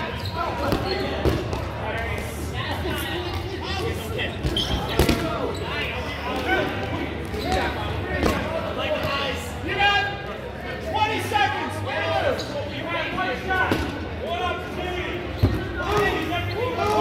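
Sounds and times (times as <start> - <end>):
players shouting and chattering: 0.0 - 17.0.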